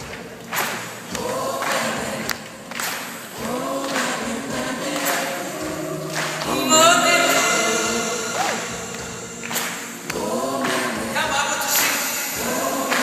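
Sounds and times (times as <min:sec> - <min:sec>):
live band accompaniment: 0:00.0 - 0:13.0
several voices singing: 0:00.0 - 0:13.0.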